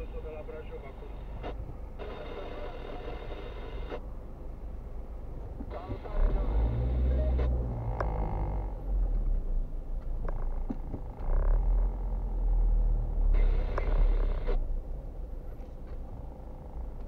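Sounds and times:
car radio talk: 0.0 - 4.1, 5.3 - 9.3, 13.1 - 14.6
low car rumble: 0.0 - 17.0.

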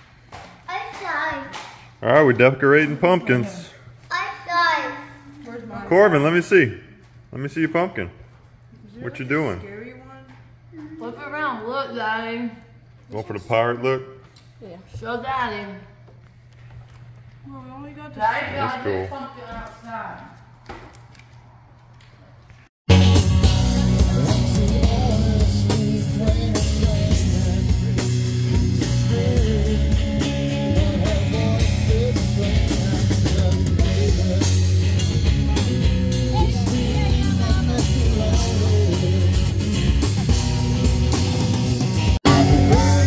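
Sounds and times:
drum kit: 22.9 - 43.0
electric guitar: 22.9 - 43.0
person singing: 23.6 - 41.5, 42.2 - 43.0.

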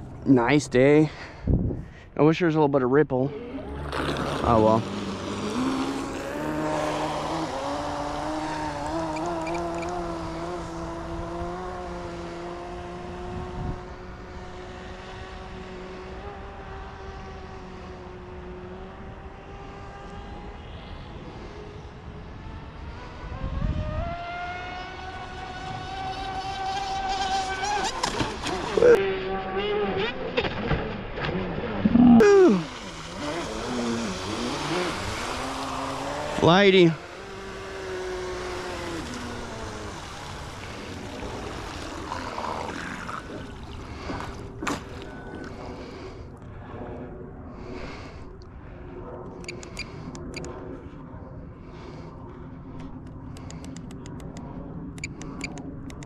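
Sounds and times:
electric motor whining: 3.3 - 17.6, 31.9 - 43.2.

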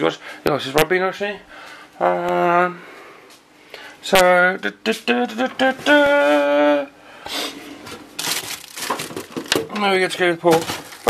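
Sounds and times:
plastic packaging crinkling: 7.9 - 11.0.

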